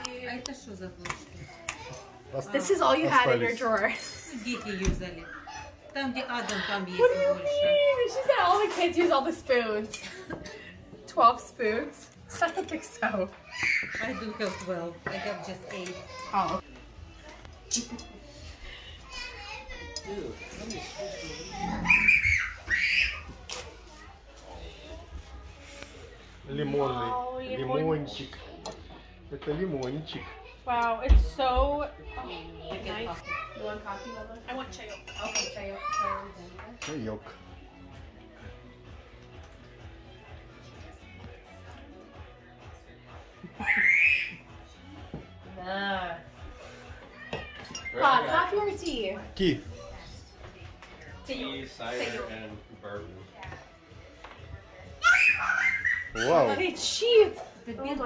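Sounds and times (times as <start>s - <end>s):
background chatter of voices: 0.0s - 58.0s.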